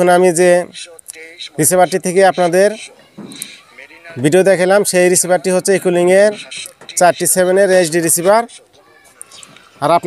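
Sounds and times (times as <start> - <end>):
man's voice: 0.0 - 8.7, 9.8 - 10.0
chickens clucking: 1.4 - 10.0.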